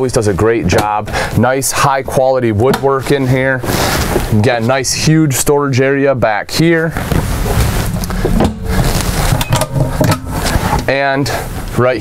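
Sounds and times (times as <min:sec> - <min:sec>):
cabinet doors rustling clatter: 0:07.0 - 0:11.0.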